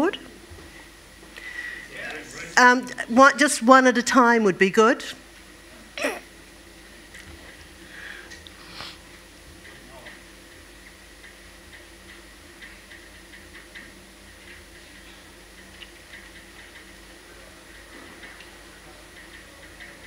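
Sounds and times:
low room hum: 0.0 - 20.0.

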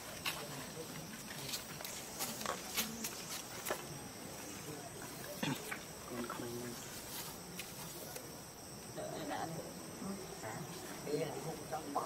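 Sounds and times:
insects droning: 0.0 - 12.0
people talking faintly: 0.0 - 12.0.

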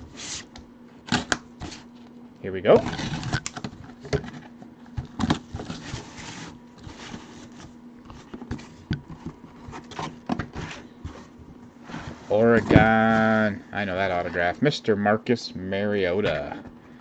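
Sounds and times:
cardboard flaps scraping: 2.7 - 13.4.

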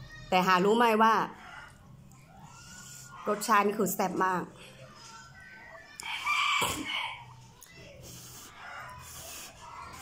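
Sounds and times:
rooster crowing: 6.0 - 7.3
slurping noodles: 8.0 - 10.0.

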